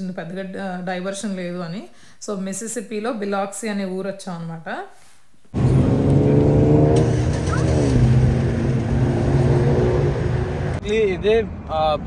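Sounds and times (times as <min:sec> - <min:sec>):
vehicle engine passing: 0:05.6 - 0:12.0.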